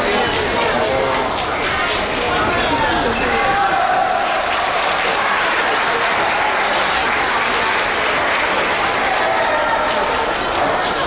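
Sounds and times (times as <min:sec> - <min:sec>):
spectators shouting and cheering: 0:00.0 - 0:11.0.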